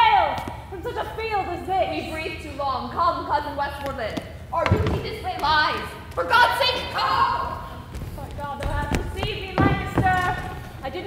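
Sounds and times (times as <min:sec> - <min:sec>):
women's voices: 0:00.0 - 0:11.0
heavy thuds on wooden floor: 0:07.9 - 0:11.0.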